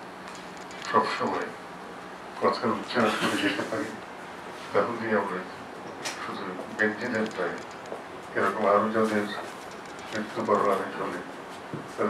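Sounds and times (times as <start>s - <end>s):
man speaking into a microphone: 0.8s - 1.6s, 2.4s - 4.0s, 4.7s - 5.6s, 6.2s - 7.6s, 8.4s - 9.5s, 10.1s - 11.3s.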